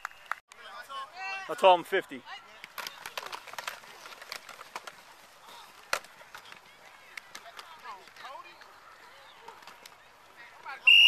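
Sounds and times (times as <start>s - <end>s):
football helmets and pads clacking: 0.5s - 10.8s.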